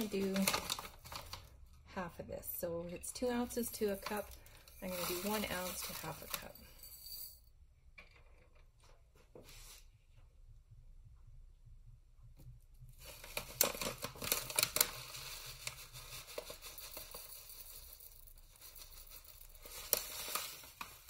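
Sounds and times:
plastic pouch crinkling: 0.0 - 1.6, 3.5 - 6.6, 13.0 - 21.0
flakes pattering against glass jar: 3.1 - 7.4, 13.7 - 21.0.

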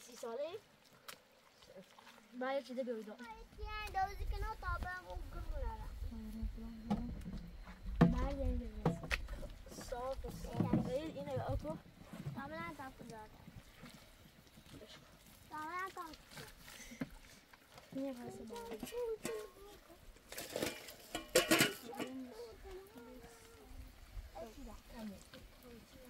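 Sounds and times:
children talking: 3.1 - 7.2, 9.7 - 13.3, 17.9 - 26.0.

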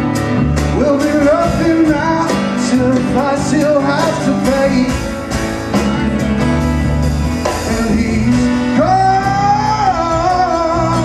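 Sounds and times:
acoustic guitar: 0.0 - 11.0
drum kit with cymbals: 0.0 - 11.0
man singing: 0.6 - 5.2, 7.4 - 11.0.

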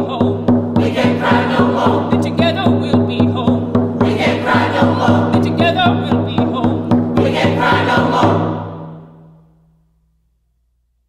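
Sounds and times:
frame drum beat: 0.0 - 9.4
choir singing held notes: 0.7 - 2.4, 4.0 - 5.7, 7.1 - 9.3.

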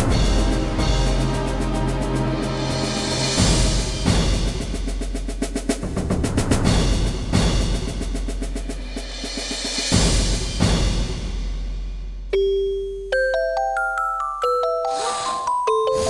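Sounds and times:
dramatic timpani and drum music: 0.0 - 12.3.

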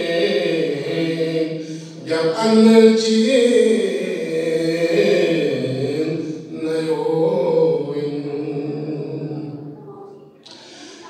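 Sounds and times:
man chanting unaccompanied: 0.0 - 9.8.

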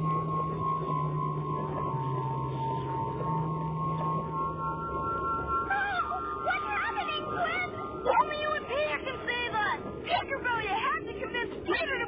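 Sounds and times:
held music tones: 0.0 - 12.0.

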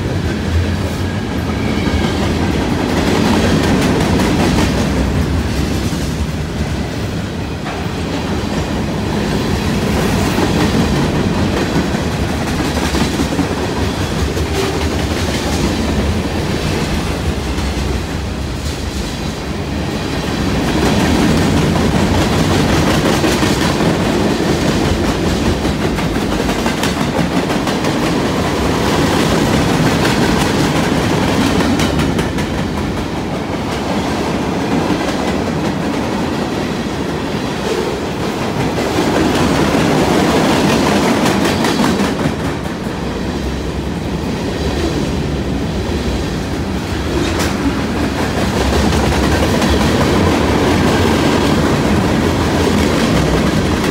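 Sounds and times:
clickety-clack of train wheels: 0.0 - 53.9
train wheels rumbling on rail: 0.0 - 53.9.

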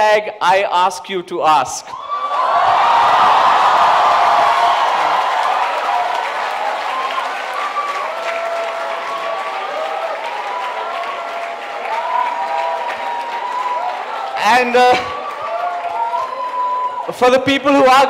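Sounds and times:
audience applauding and cheering: 2.0 - 17.5.

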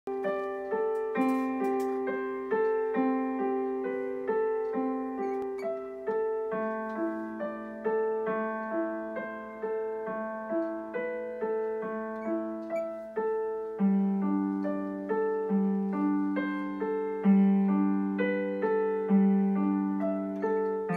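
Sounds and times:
digital piano melody: 0.1 - 20.9.

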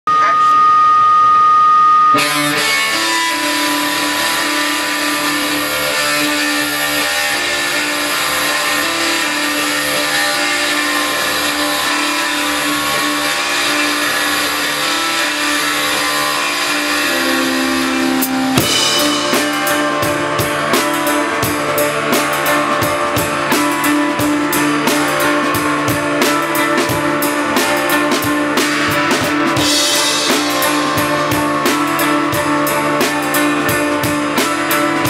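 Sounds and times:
loud steady high tone: 0.0 - 35.0
electric guitars playing: 0.2 - 35.0.

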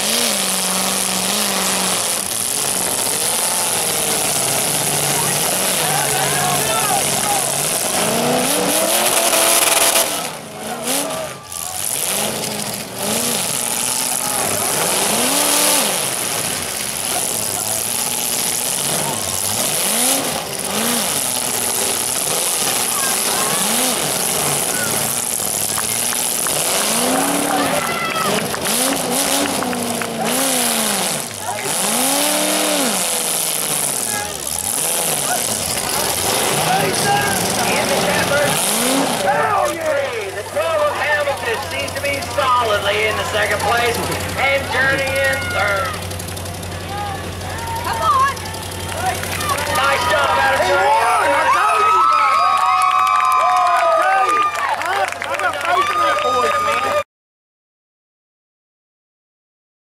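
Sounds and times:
car engines revving: 0.0 - 57.0
crowd voices: 0.0 - 57.1.

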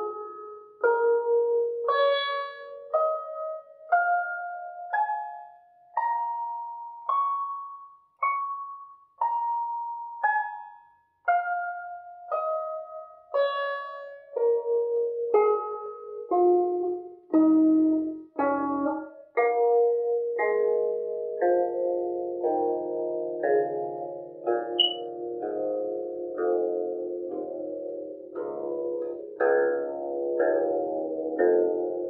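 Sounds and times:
zither notes plucked: 0.0 - 10.7, 12.3 - 32.0.

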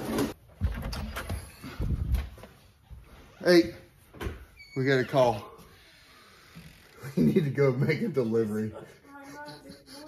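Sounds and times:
footsteps indoors: 0.0 - 6.7.

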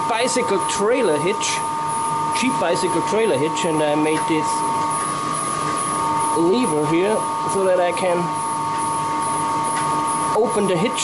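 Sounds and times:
water turbine and generator hum: 0.0 - 11.0.

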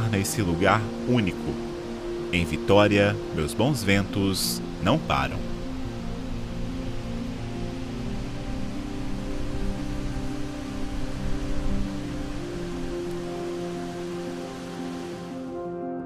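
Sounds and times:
steady rushing noise: 0.0 - 15.6
music of long held notes: 0.0 - 16.0.

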